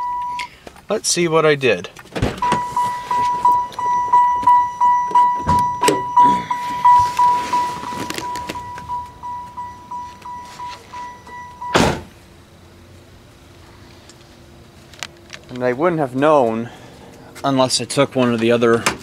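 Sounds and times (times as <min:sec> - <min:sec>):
car door warning chime: 0:00.0 - 0:00.5, 0:02.4 - 0:12.0
knocks and clunks: 0:02.0 - 0:09.1
loud thunk: 0:11.8 - 0:12.1.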